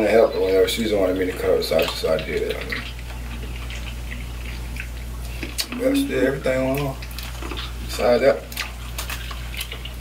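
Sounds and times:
people chewing: 0.0 - 10.0.

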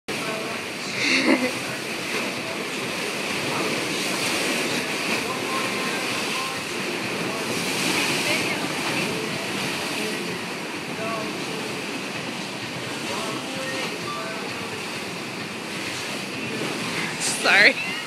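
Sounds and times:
faint voices: 0.1 - 18.0
waves: 0.1 - 18.0.

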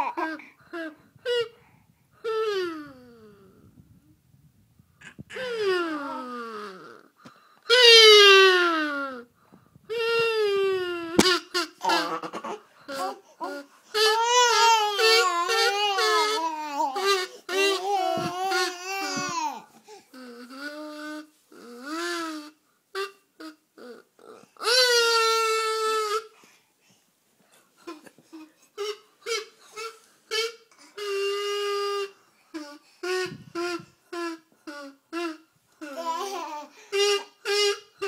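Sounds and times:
child humming into a tube: 13.0 - 22.4, 31.0 - 36.4.

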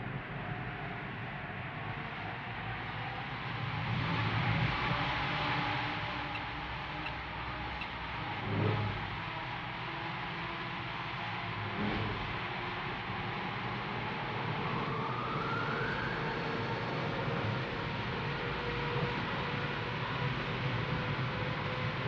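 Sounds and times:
centrifuge mechanical rumble and whir: 6.0 - 9.6.

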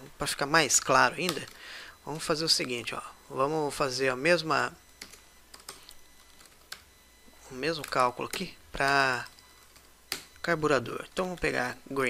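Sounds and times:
faint keyboard typing: 0.8 - 2.8, 4.8 - 11.8.

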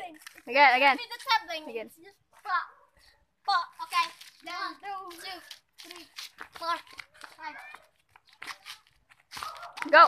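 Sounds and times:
children's voices: 0.0 - 9.0
child shouting: 3.4 - 8.0
faint short scuffing: 3.8 - 10.0.

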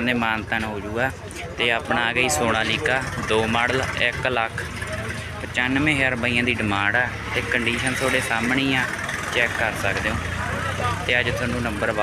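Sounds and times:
diesel tractor engine idling: 0.0 - 12.0
people talking: 0.0 - 12.0.

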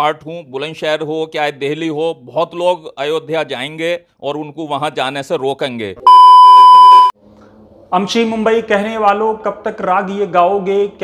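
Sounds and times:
test-tone beep: 6.1 - 7.1.

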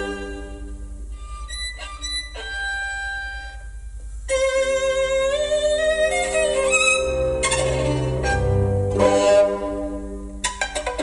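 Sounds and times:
violin music over loudspeakers: 0.0 - 11.0.

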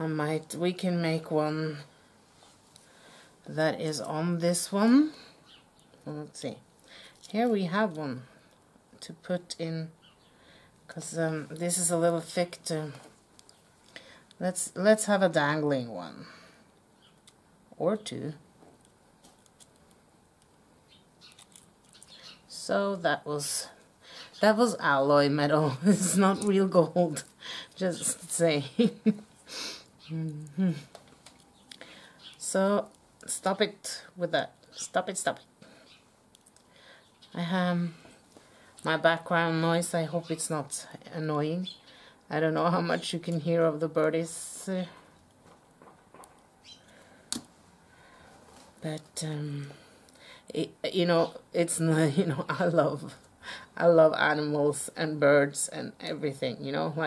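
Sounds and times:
faint bird chirps: 20.9 - 22.5, 46.6 - 47.0.

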